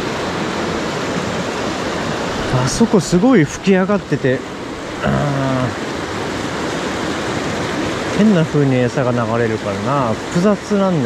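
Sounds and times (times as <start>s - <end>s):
stream rushing over rocks: 0.0s - 11.0s.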